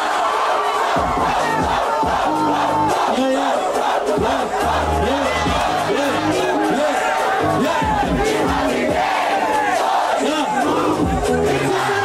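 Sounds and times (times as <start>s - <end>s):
crowd yelling and cheering: 0.0s - 12.0s.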